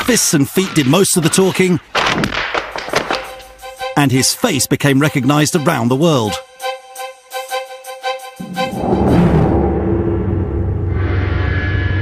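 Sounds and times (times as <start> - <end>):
music with held notes: 3.0 - 9.5.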